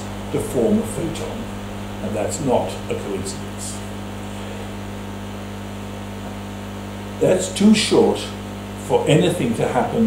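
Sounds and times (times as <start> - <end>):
electrical hum: 0.0 - 10.0
steady hiss: 0.0 - 10.0.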